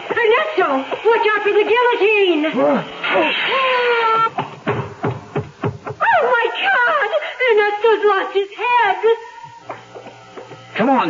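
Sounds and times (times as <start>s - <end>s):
hissing rush: 0.0s - 4.4s
heavy thuds: 4.3s - 6.0s.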